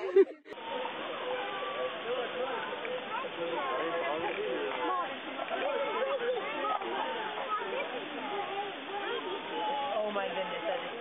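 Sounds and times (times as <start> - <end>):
people talking: 0.0 - 11.0.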